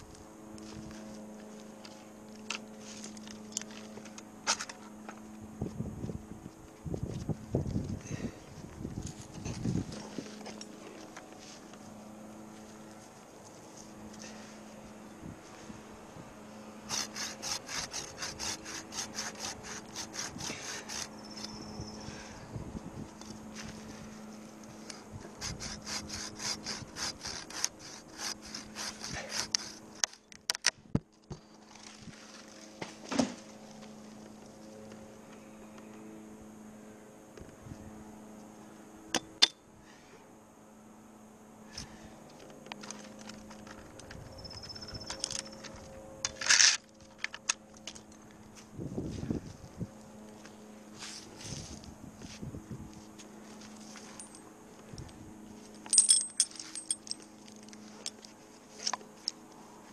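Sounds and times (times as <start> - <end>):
handsaw cutting wood: 16.9 - 21.4, 25.2 - 30.1.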